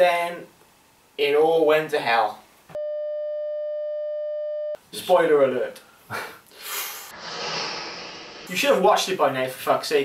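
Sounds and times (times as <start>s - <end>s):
censor bleep tone: 2.8s - 4.8s.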